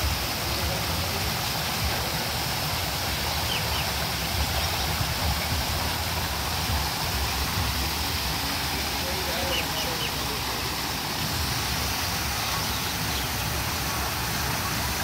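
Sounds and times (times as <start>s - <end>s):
low water rumble: 0.0s - 15.0s
waterfall splashing: 0.0s - 15.0s.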